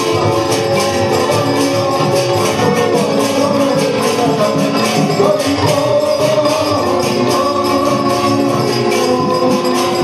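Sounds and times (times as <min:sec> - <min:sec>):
group devotional singing: 0:00.0 - 0:10.0
rhythmic metallic jingling: 0:00.0 - 0:10.0.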